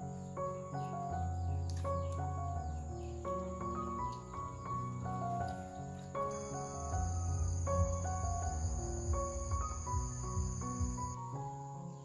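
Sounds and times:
insects chirring: 0.0s - 12.0s
melodic background music: 0.0s - 12.0s
low rumble: 6.4s - 11.2s.

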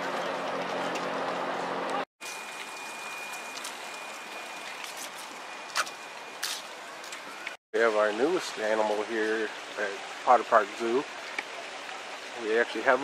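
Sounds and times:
steady outdoor hiss: 2.2s - 13.0s.

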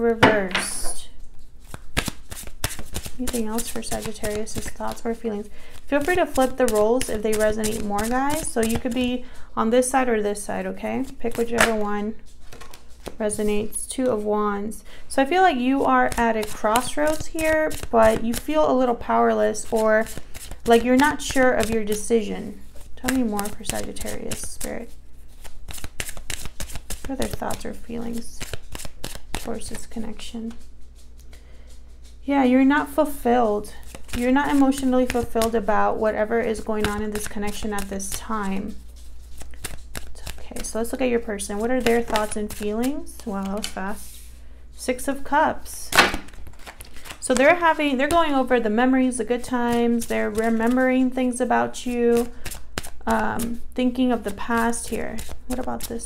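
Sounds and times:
cards being shuffled: 0.5s - 9.1s, 11.0s - 14.2s, 16.1s - 18.6s, 19.5s - 32.2s, 33.7s - 44.3s, 46.0s - 48.6s, 52.2s - 56.0s.

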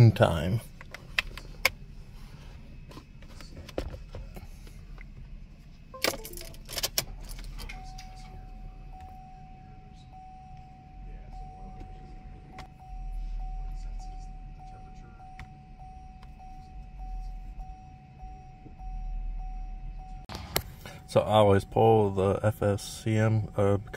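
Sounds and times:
faint electronic whine: 0.0s - 23.9s
low hum: 0.0s - 23.9s.

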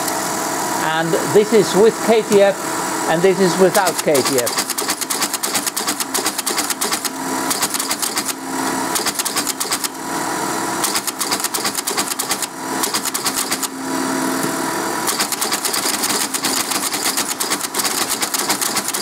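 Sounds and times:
teleprinter mechanism clattering: 3.7s - 8.4s, 9.0s - 9.9s, 10.8s - 13.7s, 15.1s - 19.0s.

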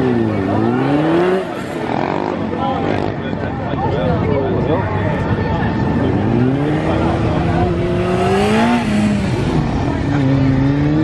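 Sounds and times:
motorcycle engine revving: 0.0s - 3.4s, 5.7s - 11.0s.

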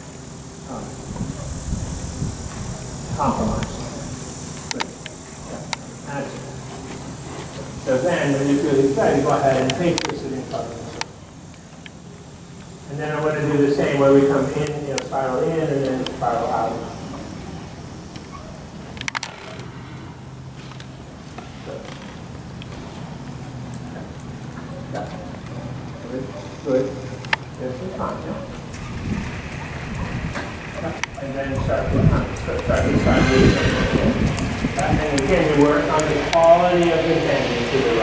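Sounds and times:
steady low hum: 0.0s - 38.0s
low rumble: 28.8s - 38.0s.

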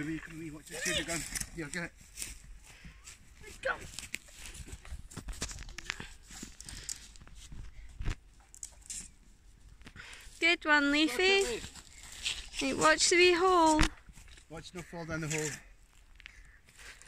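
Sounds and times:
footsteps on grass and twigs: 0.0s - 17.0s.

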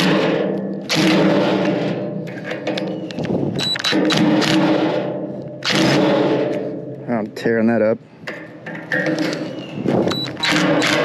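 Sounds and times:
hammer blows ringing on metal: 0.0s - 3.0s, 3.9s - 7.1s.

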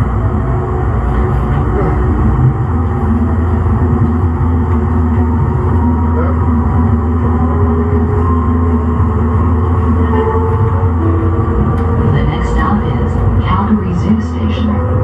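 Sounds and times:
high electric whine: 0.0s - 15.0s
light rail traction drone and hum: 0.0s - 15.0s.

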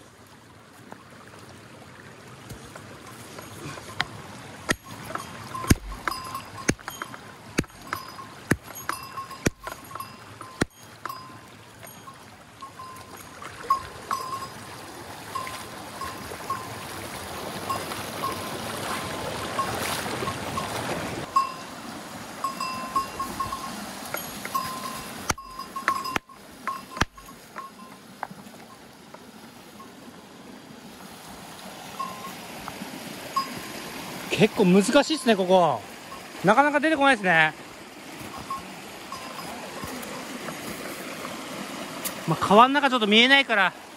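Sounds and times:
stream rushing over rocks: 0.0s - 43.9s
small ringing pings: 4.8s - 14.6s, 15.4s - 16.8s, 21.3s - 21.7s, 22.4s - 28.0s, 32.0s - 32.4s, 38.3s - 40.0s.

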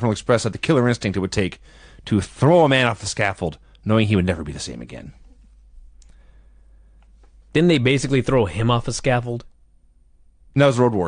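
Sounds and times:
faint low hum: 0.0s - 11.0s
faint click: 6.0s - 6.2s, 7.0s - 7.4s.

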